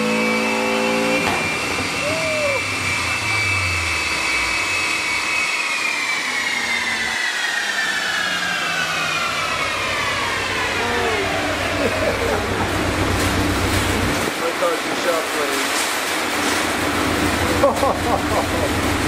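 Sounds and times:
high whine of spinning drivetrain: 0.0s - 19.0s.

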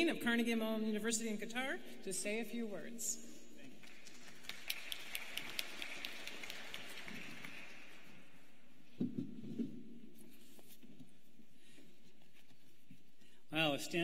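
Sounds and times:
audience applauding: 3.8s - 8.5s.

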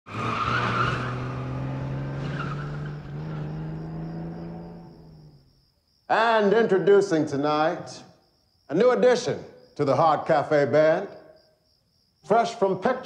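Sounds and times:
tyre screech: 0.1s - 4.8s
car engine driving away: 0.1s - 5.4s.

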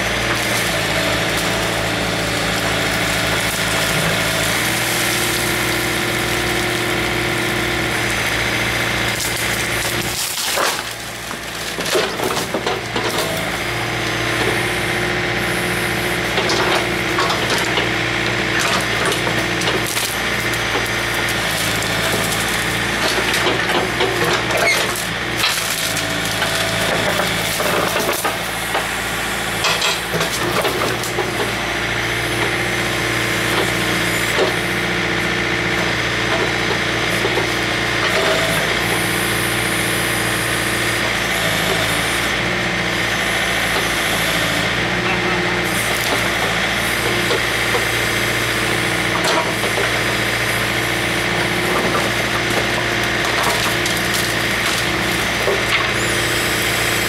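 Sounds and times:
tractor engine running: 0.0s - 57.0s
wood crunching and cracking: 0.1s - 13.7s, 16.2s - 28.9s, 47.2s - 56.6s.

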